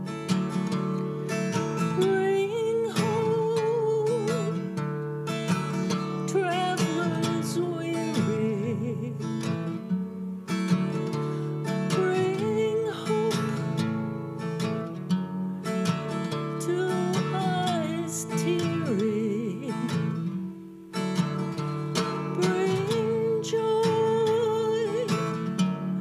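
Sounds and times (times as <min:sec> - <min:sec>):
strummed acoustic guitar: 0:00.0 - 0:26.0
woman singing: 0:01.5 - 0:04.8, 0:05.9 - 0:09.8, 0:11.1 - 0:13.9, 0:16.4 - 0:20.5, 0:22.0 - 0:26.0.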